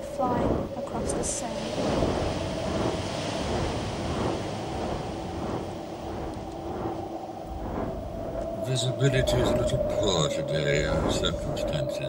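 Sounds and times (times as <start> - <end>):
rushing wind: 0.0 - 12.0.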